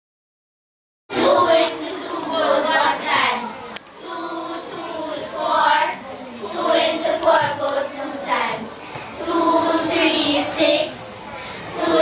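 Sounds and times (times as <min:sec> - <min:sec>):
children chanting in unison: 0:01.1 - 0:12.0.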